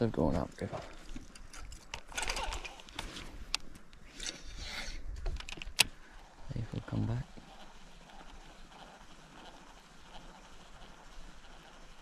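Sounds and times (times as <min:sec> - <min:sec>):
fishing rod handling rustle: 0:00.7 - 0:05.9.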